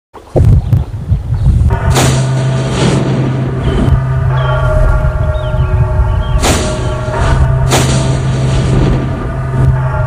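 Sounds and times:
loud low drone: 1.5s - 10.0s
cinematic hit: 1.7s - 10.0s
steady higher tones: 1.7s - 10.0s.

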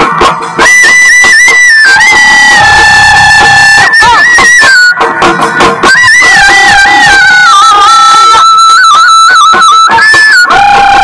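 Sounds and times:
wind instrument long high note: 0.6s - 5.1s, 5.8s - 11.0s.

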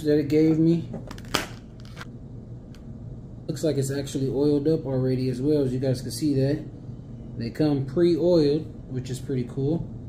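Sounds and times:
plastic packaging crackle: 1.1s - 2.1s.

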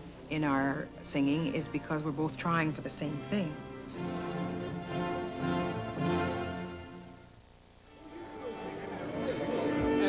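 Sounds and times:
orchestral music with string chords: 1.5s - 7.3s, 7.9s - 10.0s.

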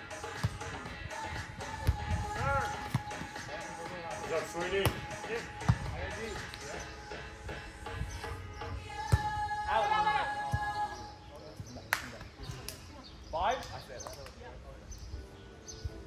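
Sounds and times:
background music: 0.0s - 12.0s
players calling: 0.0s - 12.8s.

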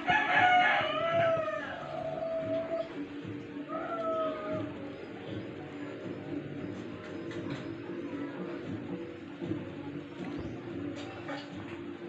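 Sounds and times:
rooster crowing: 0.0s - 2.9s.

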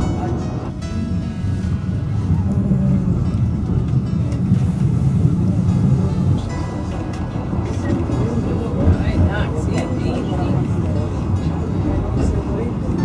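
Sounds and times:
faint passengers' voices: 0.0s - 13.0s
funicular car rumbling on track: 0.0s - 13.0s.

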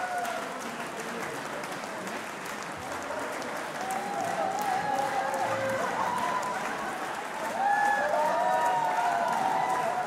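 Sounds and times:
audience applauding: 0.0s - 10.0s.

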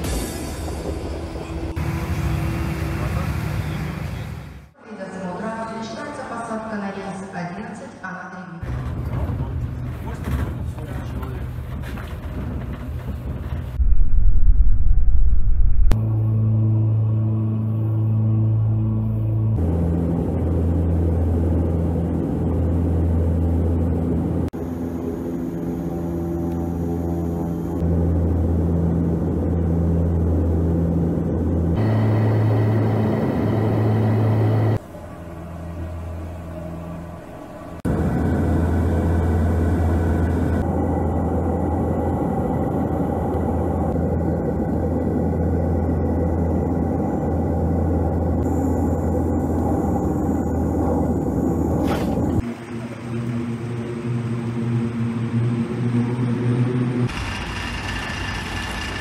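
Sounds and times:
airliner engine and propeller drone: 0.0s - 4.8s, 8.6s - 59.0s
low hum: 8.6s - 59.0s.

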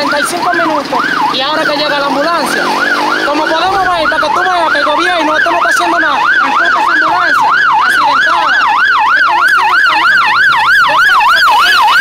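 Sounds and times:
ambulance siren yelping: 0.0s - 12.0s.

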